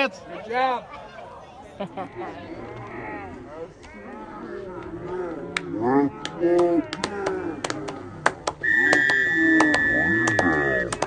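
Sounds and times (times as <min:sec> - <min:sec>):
voices of players and spectators: 0:00.0 - 0:11.0
person laughing: 0:01.8 - 0:02.4
referee's whistle blast: 0:08.6 - 0:10.9.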